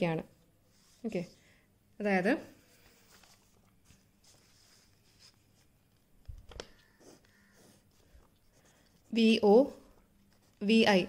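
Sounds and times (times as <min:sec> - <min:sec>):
person speaking: 0:00.0 - 0:01.4, 0:09.0 - 0:11.0
paper rustling: 0:02.7 - 0:09.1.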